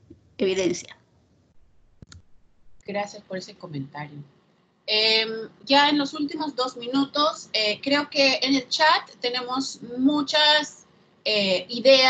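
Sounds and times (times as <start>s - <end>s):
woman speaking: 0.4s - 0.9s, 2.9s - 4.3s, 4.9s - 12.0s
sharp click: 2.0s - 2.9s.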